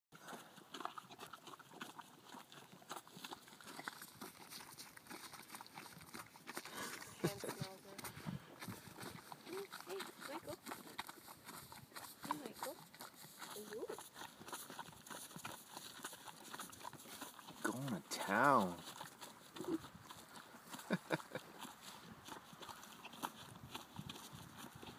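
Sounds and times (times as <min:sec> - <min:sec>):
horses licking salt block: 0:00.2 - 0:24.9.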